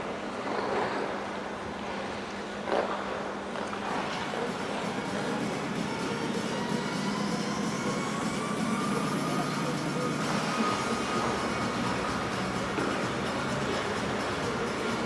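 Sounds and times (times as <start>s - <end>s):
faint music over loudspeakers: 0.0s - 15.0s
rumble of hall noise: 0.0s - 15.0s.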